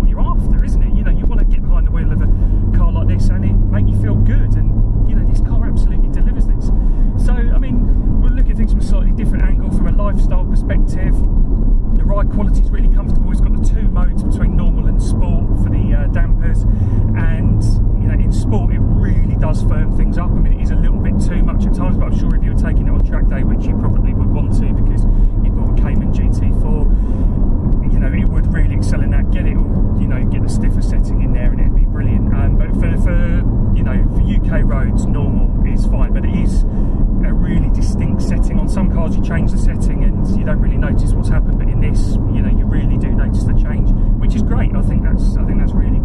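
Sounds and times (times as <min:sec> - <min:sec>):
people talking: 0:00.0 - 0:11.3, 0:12.0 - 0:26.9, 0:27.8 - 0:36.6, 0:37.2 - 0:46.0
car engine drone: 0:00.0 - 0:46.0
road noise inside car: 0:00.0 - 0:46.0.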